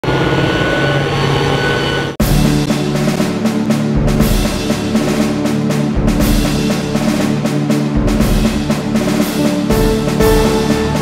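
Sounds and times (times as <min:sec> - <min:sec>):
engine drone: 0:00.0 - 0:11.0.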